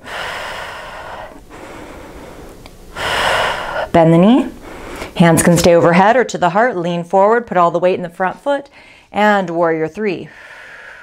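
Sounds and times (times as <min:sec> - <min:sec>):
woman breathing while exercising: 0:00.0 - 0:04.0, 0:04.6 - 0:05.2, 0:08.7 - 0:09.2, 0:10.3 - 0:11.0.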